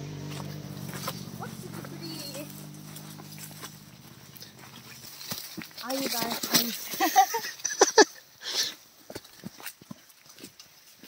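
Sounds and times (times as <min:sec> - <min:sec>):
footsteps on leaf litter: 0:00.2 - 0:07.5
brushing through undergrowth: 0:00.2 - 0:07.8.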